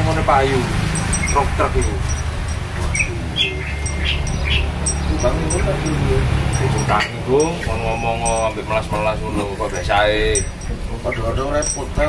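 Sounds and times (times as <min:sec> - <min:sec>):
low background rumble: 0:00.0 - 0:12.0
high bird chirps: 0:00.8 - 0:08.6.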